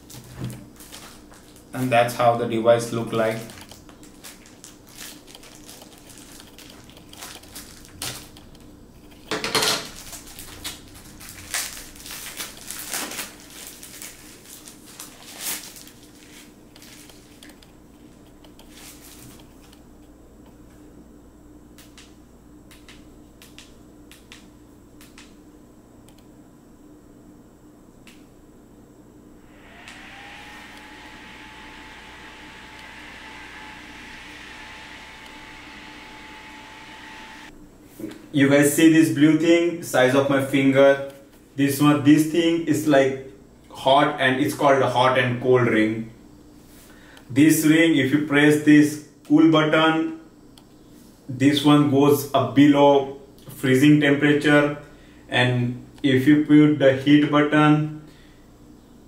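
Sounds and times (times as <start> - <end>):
whirring hum of small fan: 0.0 - 59.0
paper wrapping crinkling: 3.3 - 8.4, 9.9 - 17.6.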